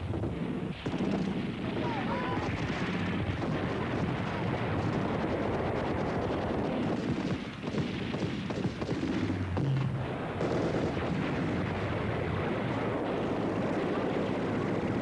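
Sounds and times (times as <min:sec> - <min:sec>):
rifles firing rapid shots: 0:00.2 - 0:12.0.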